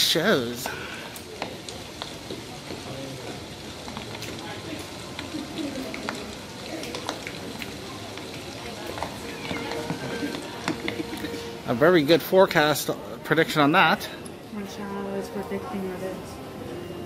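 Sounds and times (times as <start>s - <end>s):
faint indistinct voices: 0.6s - 17.0s.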